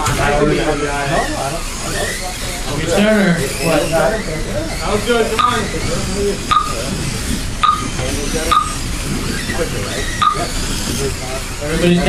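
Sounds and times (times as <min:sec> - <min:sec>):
voices: 0:00.0 - 0:12.0
toy cars hissing on track: 0:03.5 - 0:11.9
short electronic timer beeps: 0:05.4 - 0:05.6, 0:06.5 - 0:06.8, 0:07.6 - 0:07.9, 0:08.5 - 0:08.8.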